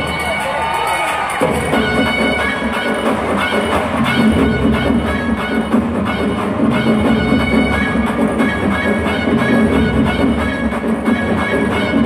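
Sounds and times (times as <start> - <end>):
loud stage-show music over pa: 0.0 - 12.0.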